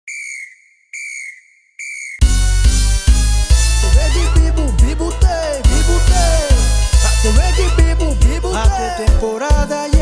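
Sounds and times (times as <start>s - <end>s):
whistle blasts: 0.1s - 2.2s.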